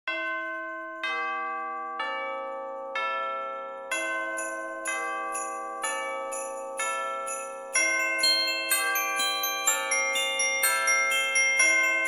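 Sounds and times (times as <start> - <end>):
bell chimes ringing: 0.1 - 12.0.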